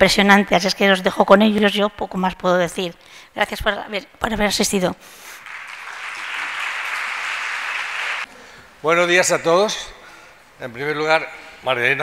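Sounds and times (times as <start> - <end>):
audience applauding: 5.3 - 8.3.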